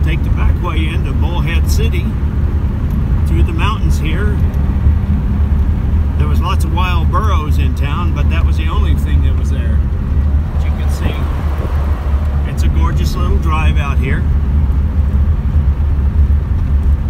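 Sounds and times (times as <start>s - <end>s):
car engine drone: 0.0s - 17.0s
road noise inside car: 0.0s - 17.0s.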